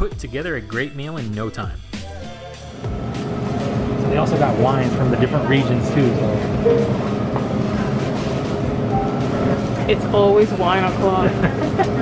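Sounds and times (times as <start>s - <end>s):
steady rumble: 2.8s - 12.0s.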